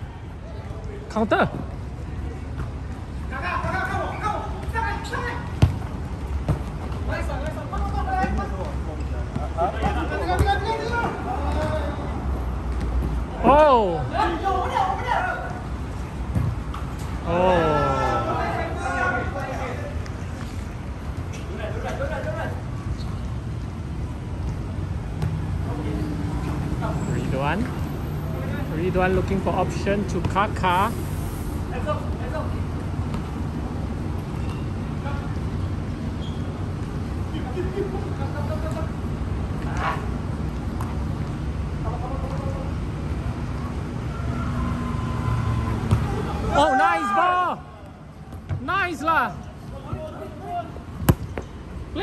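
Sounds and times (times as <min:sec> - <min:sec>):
road traffic rumble: 0:00.0 - 0:46.8, 0:47.6 - 0:52.0
players shouting: 0:17.3 - 0:19.4, 0:45.2 - 0:50.8
football kick: 0:51.0 - 0:51.5.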